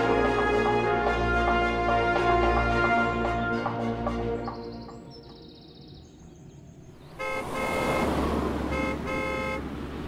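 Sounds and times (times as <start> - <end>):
car driving fast: 6.9 - 10.0
car horn honking: 7.0 - 9.8.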